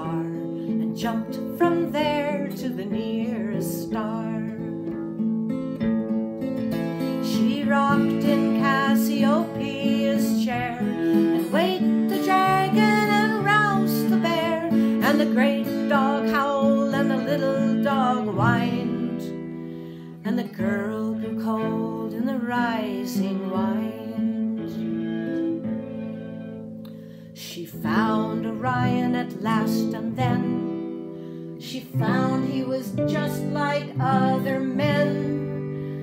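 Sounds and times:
acoustic guitar strumming: 0.0 - 36.0
fiddle melody with vibrato: 0.0 - 36.0.

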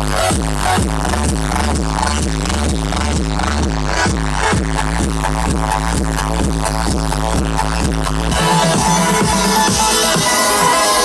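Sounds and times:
steady kick drum: 0.0 - 10.6
deep bass line: 0.0 - 11.0
electronic dance music: 0.0 - 11.0
high synths: 8.1 - 11.0.

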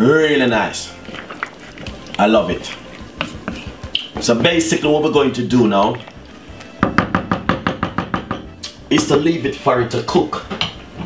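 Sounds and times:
wooden spoon knocking pot: 1.0 - 5.1, 5.8 - 9.3, 10.4 - 10.8.

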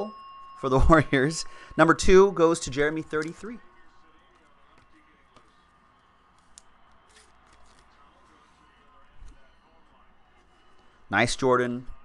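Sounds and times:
trading cards in plastic sleeves rustling: 6.3 - 11.0.

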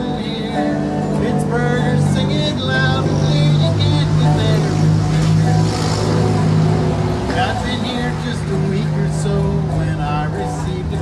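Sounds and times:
acoustic guitar through pa: 0.0 - 11.0
car passing: 0.2 - 11.0.

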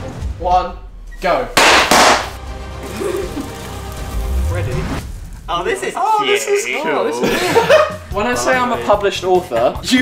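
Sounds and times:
music: 0.0 - 10.0
confetti rustling: 1.6 - 6.6.

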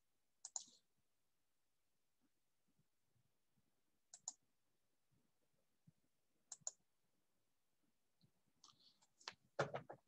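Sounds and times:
computer mouse clicks: 0.4 - 0.8, 4.1 - 4.4, 6.5 - 6.8.

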